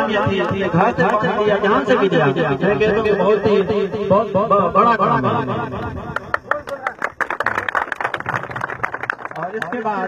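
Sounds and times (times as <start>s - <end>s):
crowd applauding: 6.2s - 10.0s.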